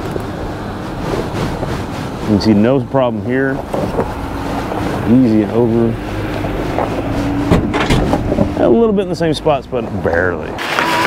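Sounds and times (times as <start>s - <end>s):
truck engine idling: 0.0s - 10.6s.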